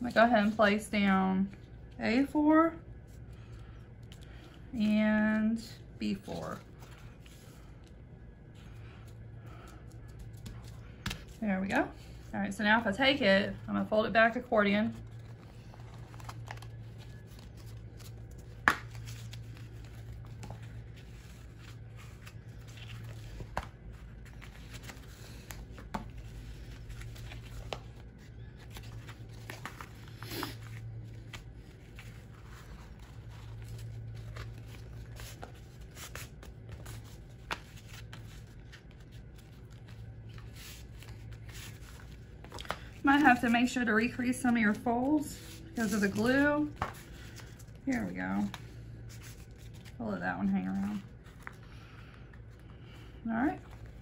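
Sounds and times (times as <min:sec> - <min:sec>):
low steady hum: 0:00.0 - 0:54.0
paper rustling and creasing: 0:13.5 - 0:54.0.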